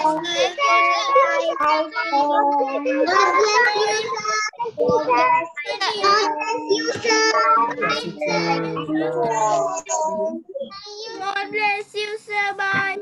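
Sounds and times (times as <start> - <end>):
children calling goodbye: 5.1 - 10.2.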